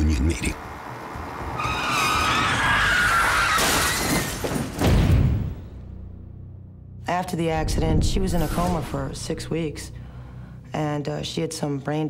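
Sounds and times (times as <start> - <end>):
tires screeching in a skid: 0.6 - 4.4
loud vehicle crash: 1.5 - 5.6.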